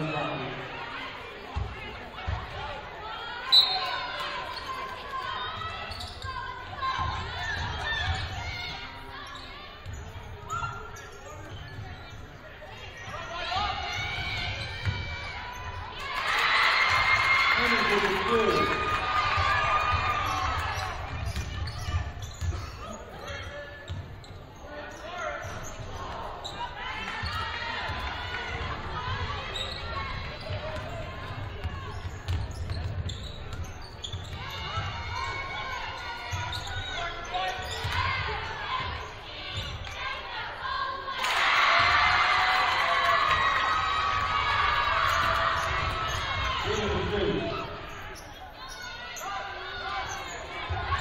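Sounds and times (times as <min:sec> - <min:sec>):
crowd noise: 0:00.0 - 0:51.0
voices echoing in gym: 0:00.0 - 0:51.0.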